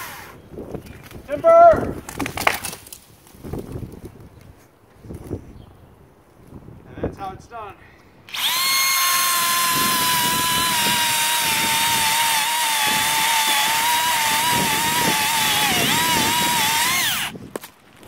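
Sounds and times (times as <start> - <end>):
electric chainsaw cutting stump: 8.3 - 17.4.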